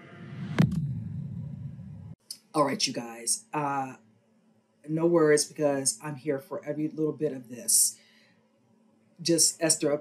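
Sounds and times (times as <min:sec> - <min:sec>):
loud hit: 0:00.0 - 0:02.2
low rumble: 0:00.0 - 0:02.2
trailer music: 0:00.0 - 0:02.2.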